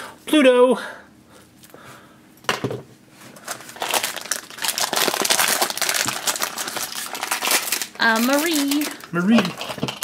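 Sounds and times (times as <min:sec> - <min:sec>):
foil bag crinkling: 0:03.4 - 0:10.0.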